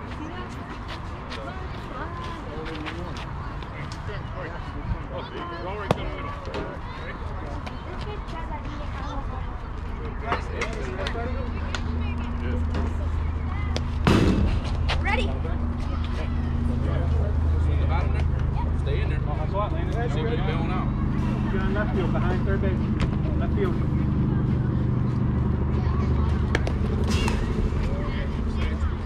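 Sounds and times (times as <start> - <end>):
scattered voices: 0.0 - 29.0
low steady rumble: 10.9 - 29.0.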